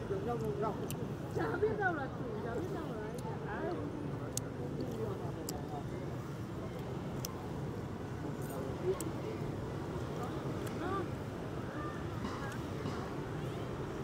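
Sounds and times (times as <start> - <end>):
passers-by talking: 0.0 - 14.0
traffic hum: 0.0 - 14.0.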